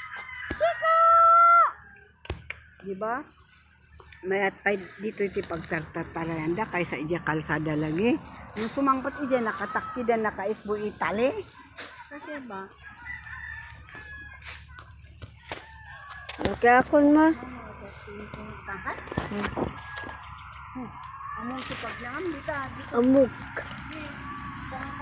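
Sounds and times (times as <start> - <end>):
rooster crowing: 0.0 - 2.1, 8.6 - 11.6, 12.5 - 22.2.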